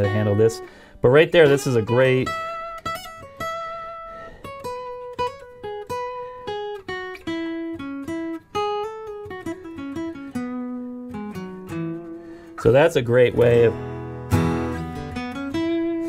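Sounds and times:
acoustic guitar picked melody: 0.0s - 16.0s.

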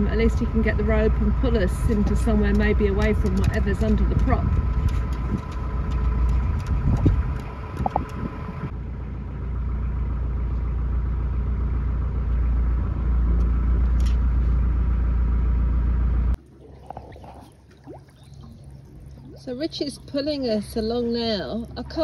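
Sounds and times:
diesel engine idling: 0.0s - 16.4s, 18.5s - 22.0s.

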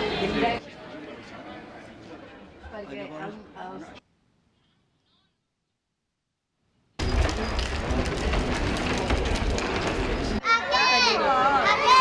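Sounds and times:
street rumble: 7.0s - 10.4s.

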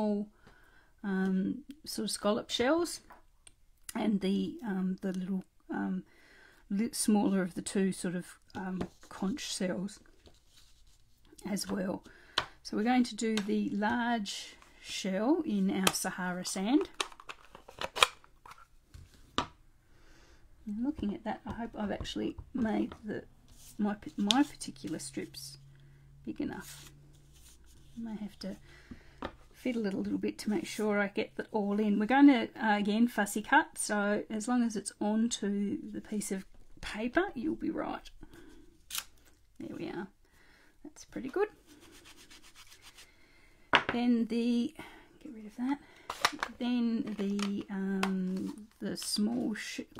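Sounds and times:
light rubbing on a tabletop: 41.6s - 43.1s.

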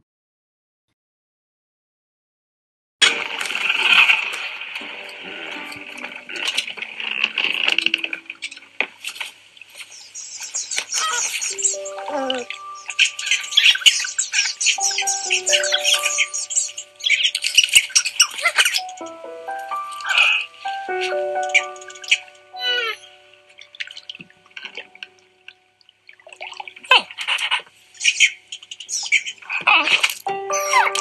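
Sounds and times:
water splashing and lapping: 3.1s - 20.6s, 23.0s - 30.3s
soft background music: 3.2s - 28.7s, 30.1s - 31.0s
cartoon birds squawking and chirping: 9.9s - 24.2s, 26.9s - 31.0s.

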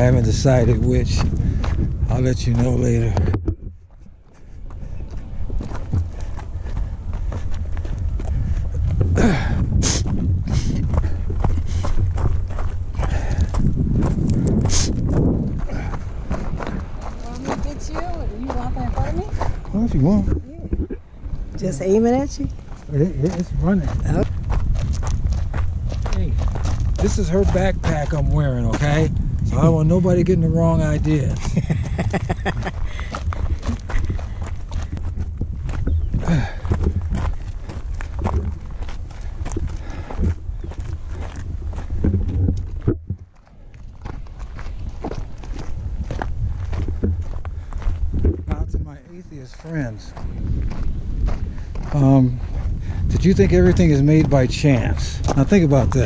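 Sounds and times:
footsteps crunching on gravel: 0.0s - 56.0s
wind rumble on microphone: 0.0s - 56.0s.

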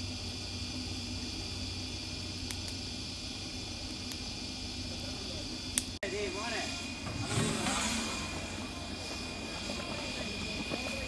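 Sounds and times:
faint fire crackles: 0.0s - 11.0s
wood fire hissing: 0.0s - 11.0s.

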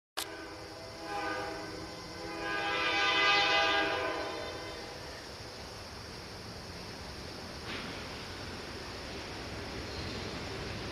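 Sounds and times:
locomotive air horn: 0.2s - 5.0s.

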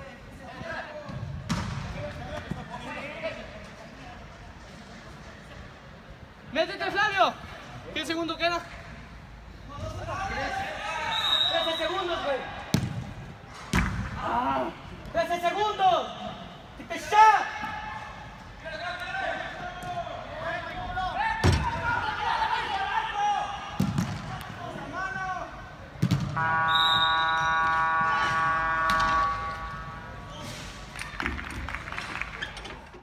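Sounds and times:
soccer ball thuds echoing: 1.1s - 2.1s, 12.7s - 14.2s, 23.8s - 24.4s, 26.0s - 26.4s.

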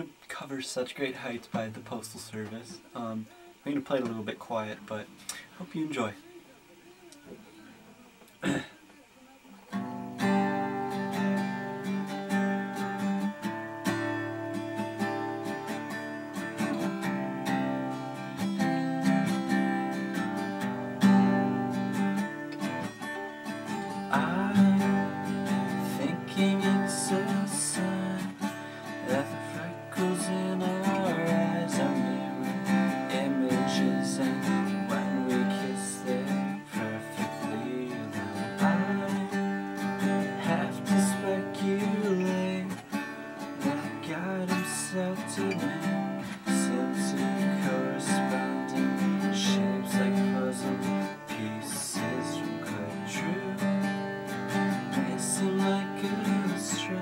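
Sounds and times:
acoustic guitar strumming chords: 0.0s - 6.4s, 8.1s - 57.0s
man singing softly: 0.0s - 12.9s, 22.6s - 57.0s.

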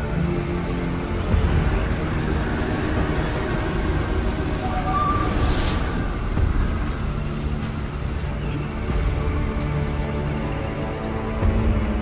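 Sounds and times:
low sustained drone: 0.0s - 9.3s
low magical blast rumble: 1.5s - 8.2s
brief whoosh: 4.6s - 6.8s.

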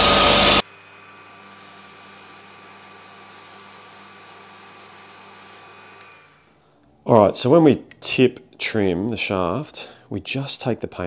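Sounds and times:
belt sander whirring: 0.0s - 6.6s
vacuum cleaner running: 0.0s - 6.6s.

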